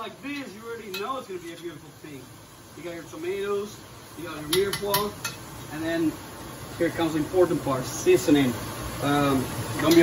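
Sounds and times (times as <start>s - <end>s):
skimmer stirring vegetables in pot: 0.0s - 6.2s.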